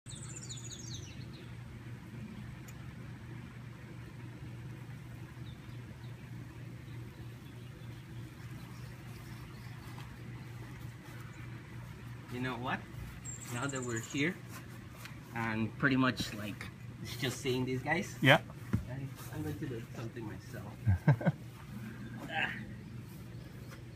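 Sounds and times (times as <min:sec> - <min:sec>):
bird chirping: 0:00.1 - 0:01.8, 0:05.2 - 0:14.6
steady low hum: 0:00.1 - 0:23.9.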